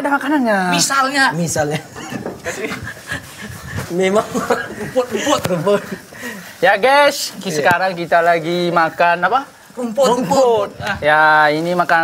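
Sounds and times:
men laughing and panting: 1.5 - 7.1.

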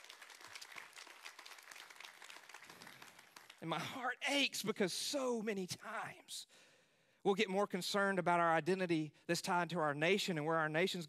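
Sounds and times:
faint scattered clapping: 0.0 - 3.7.

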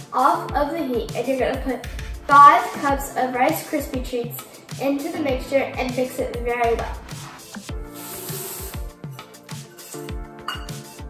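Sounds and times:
electronic music with kick drum: 0.5 - 3.1, 3.8 - 11.0
bright high hiss: 7.9 - 9.0.

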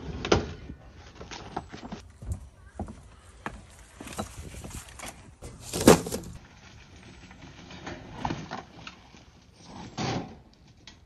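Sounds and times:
papers rustling: 4.0 - 6.4.

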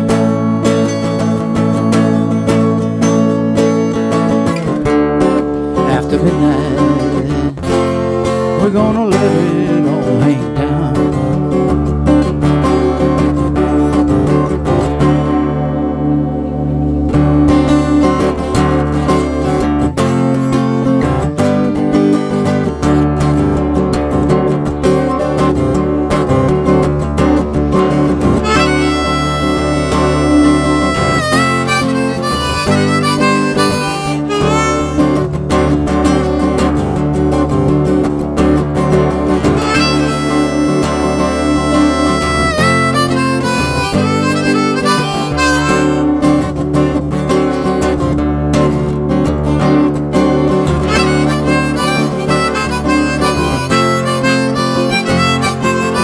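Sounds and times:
strummed acoustic guitar: 0.0 - 56.0
harmonica with bent notes: 28.2 - 35.7, 39.4 - 46.6, 50.8 - 56.0.

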